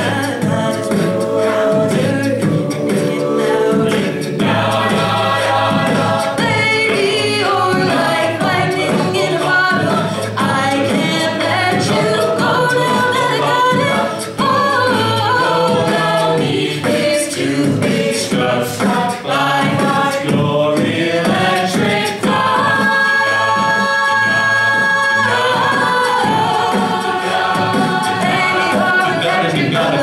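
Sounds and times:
female lead vocal: 0.0 - 20.3, 21.3 - 30.0
beatboxed percussion: 0.0 - 30.0
layered backing vocals: 0.0 - 30.0.

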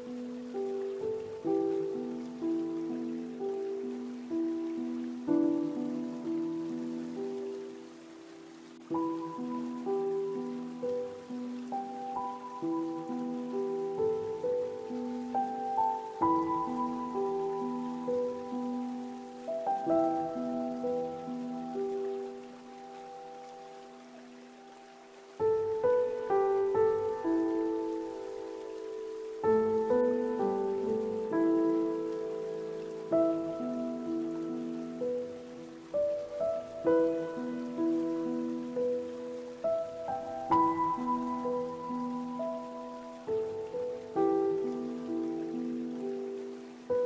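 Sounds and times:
flowing stream hiss: 0.0 - 47.0
slow soft piano music: 0.0 - 47.0.

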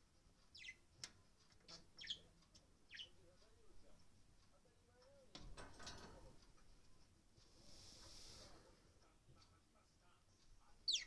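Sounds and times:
budgerigar chirping: 0.5 - 0.8, 2.0 - 2.2, 2.9 - 3.2.

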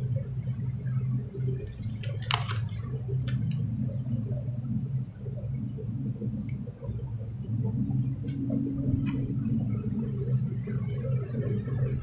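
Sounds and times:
steady low hum: 0.0 - 12.0
book pages rustling: 1.8 - 3.4.

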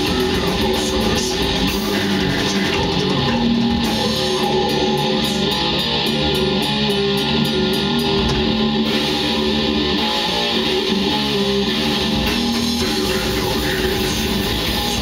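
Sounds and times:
death metal band playing live: 0.0 - 15.0
drum kit beat: 0.0 - 15.0.

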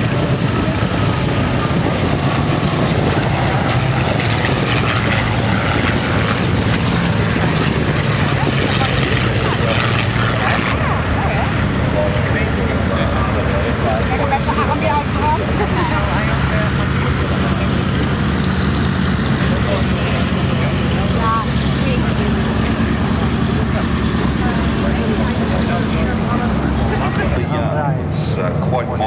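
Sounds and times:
indistinct crowd voices: 0.0 - 29.0
piston aircraft engines droning: 0.0 - 29.0.

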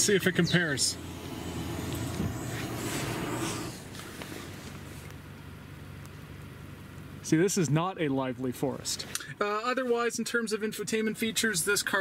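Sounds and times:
steady low hum: 0.0 - 9.4.

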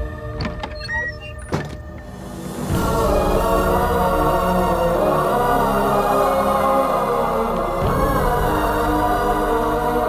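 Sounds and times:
dark musical drone: 0.0 - 10.0.

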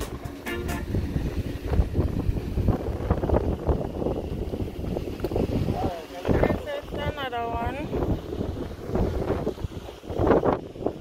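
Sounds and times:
guitar music: 0.0 - 1.3
wind buffeting microphone: 0.0 - 11.0.

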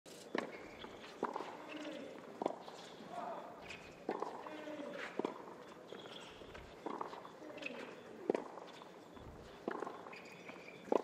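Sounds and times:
racquet hitting tennis ball: 0.4 - 2.8, 3.7 - 6.2, 9.7 - 10.2.

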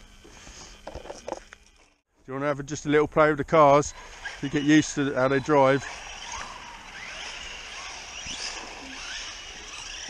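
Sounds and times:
electric rc cars whining: 3.6 - 10.0.

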